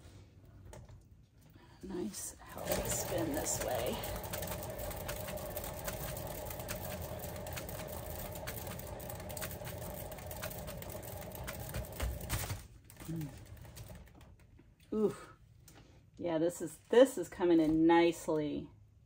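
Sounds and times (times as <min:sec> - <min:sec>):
turntable whirring and ticking: 0:02.4 - 0:12.3.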